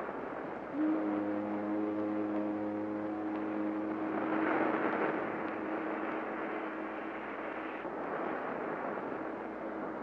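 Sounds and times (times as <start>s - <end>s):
ocean wave breaking: 0.7s - 10.0s.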